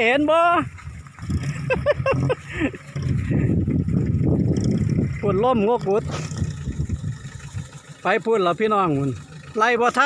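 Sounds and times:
gusty wind buffeting microphone: 0:00.8 - 0:07.8.

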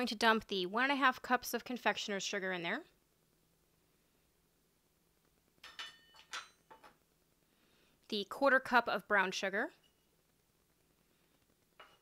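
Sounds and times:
metal cup clinking on metal: 0:05.6 - 0:06.9.

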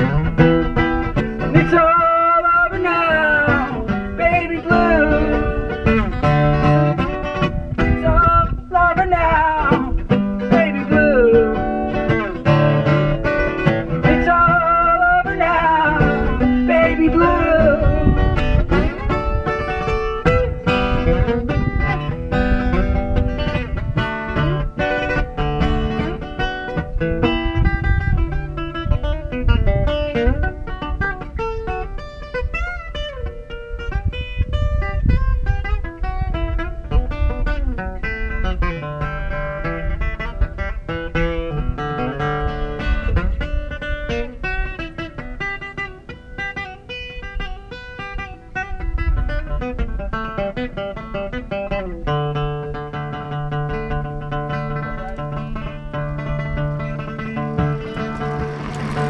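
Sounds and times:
amplified acoustic guitar playing: 0:00.0 - 0:59.0
strong bass: 0:56.3 - 0:59.0.

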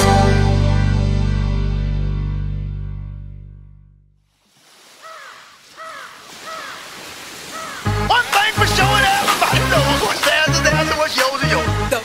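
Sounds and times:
bird cawing: 0:04.8 - 0:08.5.

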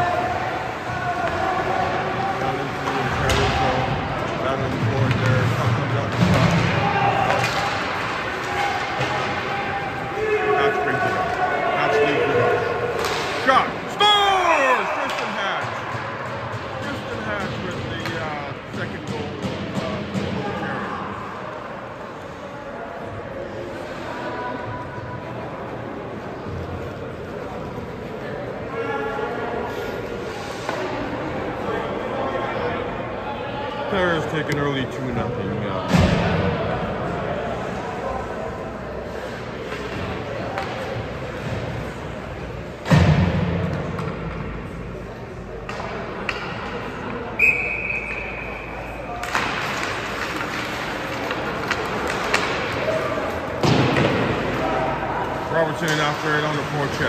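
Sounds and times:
puck and sticks knocking boards: 0:04.7 - 0:09.5, 0:49.2 - 0:54.6.

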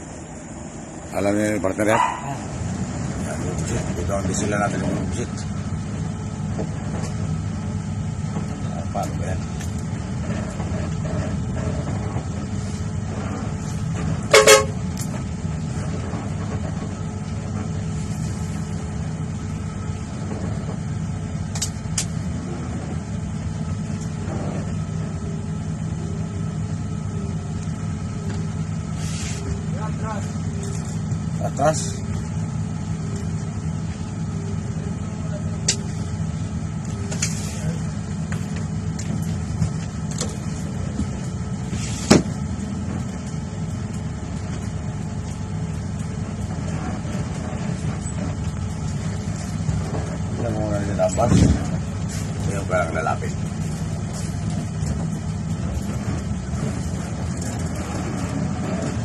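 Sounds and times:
bus diesel engine idling: 0:00.0 - 0:59.0
horn toot: 0:14.3 - 0:14.8.

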